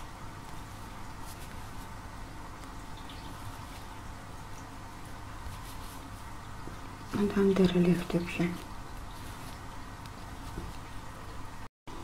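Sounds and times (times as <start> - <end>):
crochet hook rustling thread: 0.0 - 4.0, 5.4 - 7.8, 8.4 - 10.8
low hum and hiss: 0.0 - 12.0.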